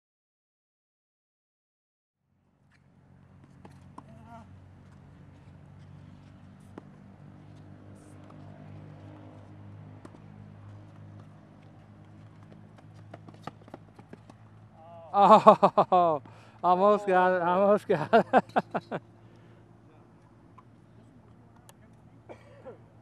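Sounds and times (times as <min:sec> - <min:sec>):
tennis ball bounces: 0:03.4 - 0:04.3, 0:06.2 - 0:14.7.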